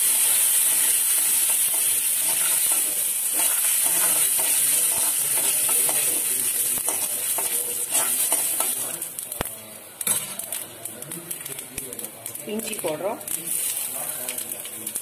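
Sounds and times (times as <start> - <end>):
oil sizzling in a pan: 0.0 - 15.0.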